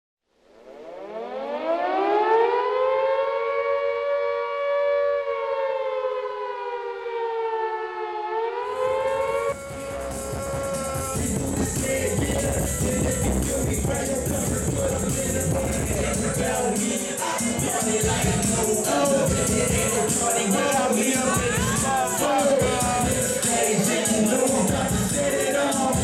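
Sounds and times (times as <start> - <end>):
siren wailing: 0.5 - 25.8
music with beat and hi-hats: 9.0 - 26.0.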